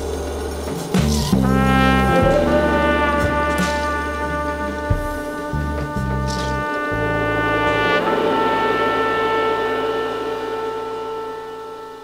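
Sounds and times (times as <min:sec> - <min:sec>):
low drone: 0:00.0 - 0:12.0
jazz horns holding a chord: 0:01.2 - 0:12.0.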